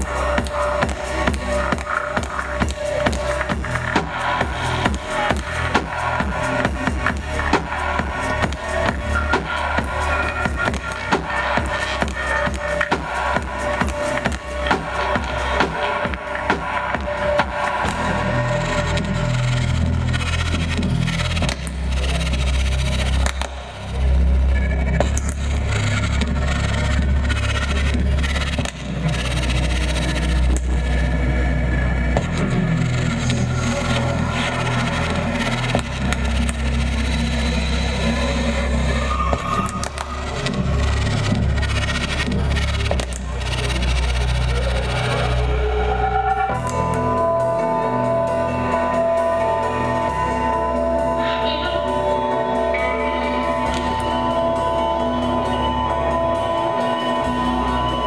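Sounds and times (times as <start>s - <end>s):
dense noisy electronic texture: 0.0s - 58.0s
heavy sustained bass notes: 0.0s - 58.0s.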